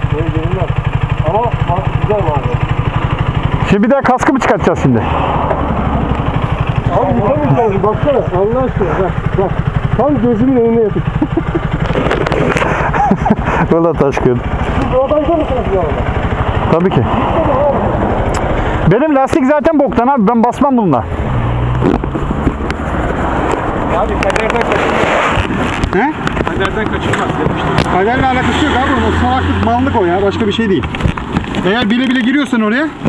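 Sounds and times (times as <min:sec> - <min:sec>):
motorcycle engine idling: 0:00.0 - 0:33.0.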